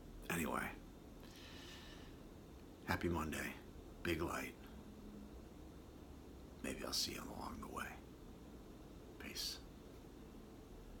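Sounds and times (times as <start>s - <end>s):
man whispering: 0.2s - 0.8s, 2.8s - 4.7s, 6.6s - 8.1s, 9.2s - 9.7s.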